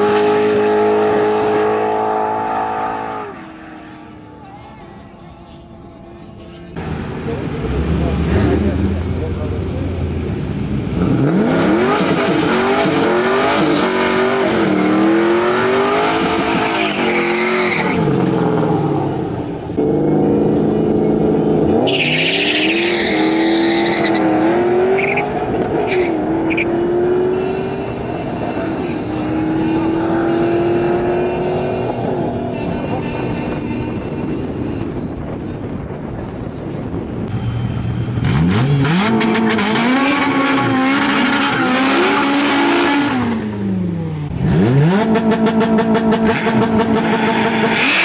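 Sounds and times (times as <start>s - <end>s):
drag racing cars at full throttle: 0.0s - 4.4s, 6.8s - 48.0s
tyre squeal: 16.4s - 18.1s, 21.8s - 24.4s.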